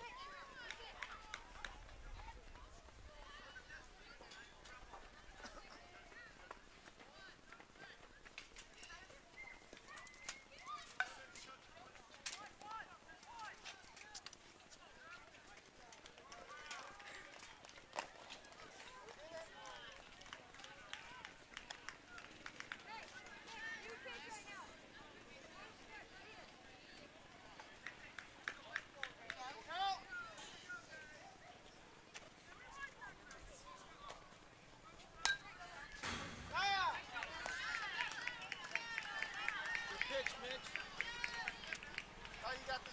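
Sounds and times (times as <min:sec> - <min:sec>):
distant chatter and calls: 0:00.0 - 0:42.9.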